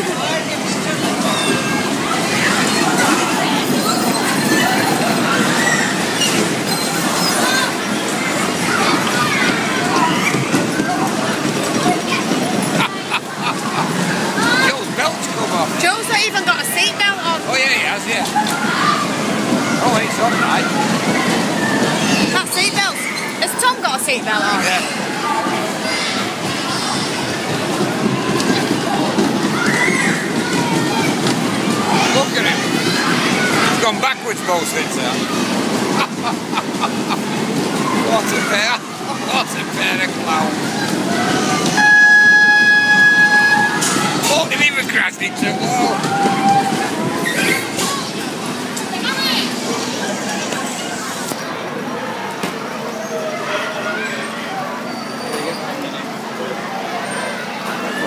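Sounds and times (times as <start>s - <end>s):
noisy crowd: 0.0s - 58.0s
voices talking: 0.0s - 58.0s
steady signal tone: 41.8s - 43.8s.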